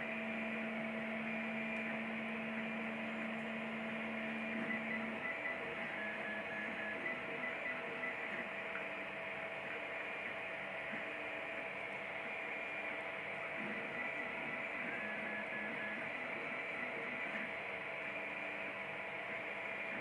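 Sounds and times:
printer fans and motors humming: 0.0s - 20.0s.

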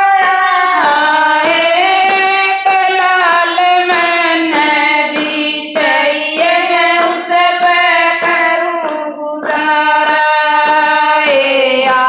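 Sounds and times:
hand claps: 0.0s - 12.0s
women singing devotional song: 0.0s - 12.0s.

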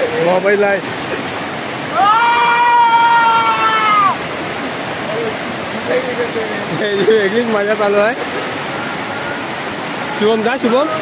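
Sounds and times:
waterfall rushing over rocks: 0.0s - 11.0s
person shouting: 1.9s - 4.2s.

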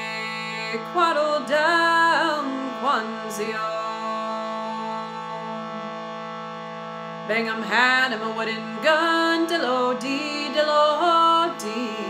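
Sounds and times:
shruti box reed drone: 0.0s - 12.0s.

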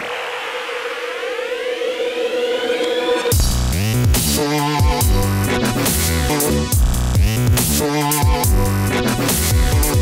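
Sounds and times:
rising pitch sweeps: 0.0s - 3.4s.

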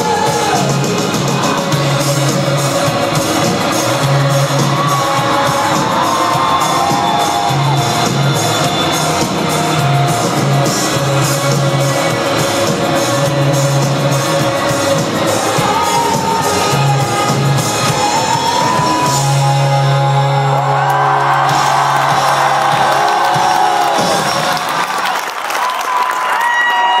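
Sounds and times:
live rock band playing: 0.0s - 25.1s
crowd cheering and whooping: 0.0s - 27.0s.

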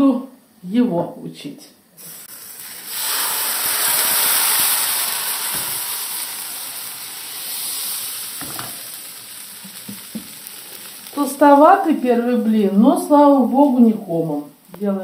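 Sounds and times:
batter sizzling in a frying pan: 2.0s - 15.0s.

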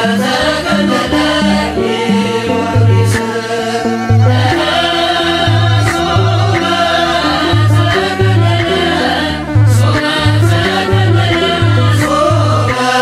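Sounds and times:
chant-like hymn singing: 0.0s - 13.0s
instrumental backing with bass notes: 0.0s - 13.0s.

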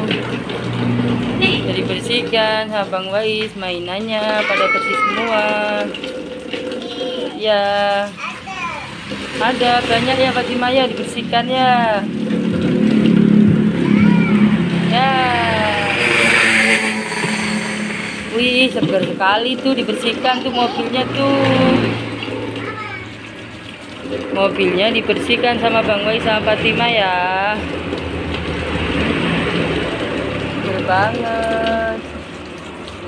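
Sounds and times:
low motor hum: 0.0s - 8.0s, 8.9s - 33.0s
tap water splashing on plastic: 0.0s - 15.4s, 18.4s - 33.0s
child's voice: 4.2s - 5.8s, 6.8s - 9.0s, 13.8s - 15.8s, 20.1s - 21.8s, 22.6s - 23.2s.

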